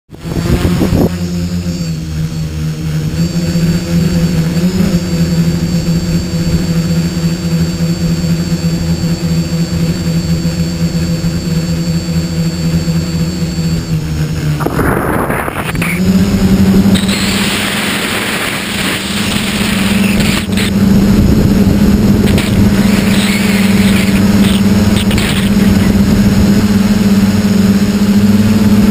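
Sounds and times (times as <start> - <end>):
drone motors humming: 0.1 - 28.9.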